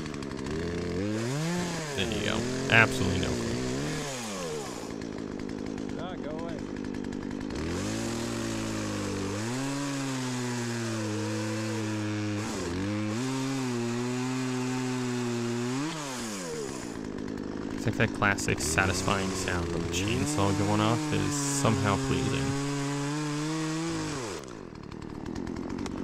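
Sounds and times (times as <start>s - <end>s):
chainsaw revving: 0.0s - 26.0s.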